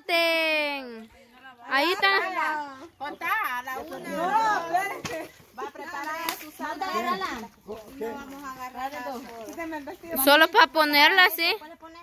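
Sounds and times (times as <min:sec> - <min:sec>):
people chattering excitedly: 0:00.0 - 0:12.0.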